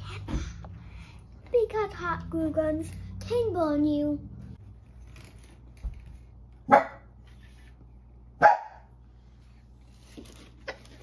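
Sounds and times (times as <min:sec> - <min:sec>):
dog barking: 0:06.7 - 0:07.1, 0:08.4 - 0:08.9.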